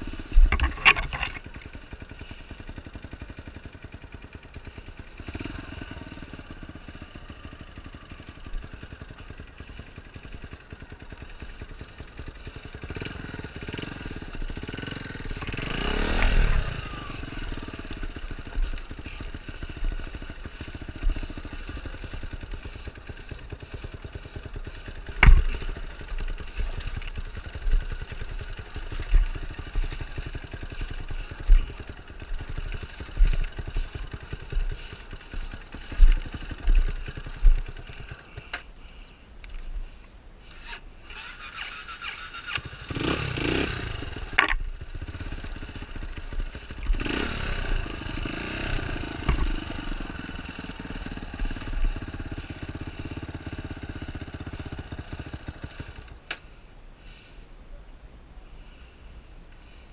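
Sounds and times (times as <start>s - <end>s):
dirt bike engine revving: 0.0s - 39.0s, 39.8s - 56.4s.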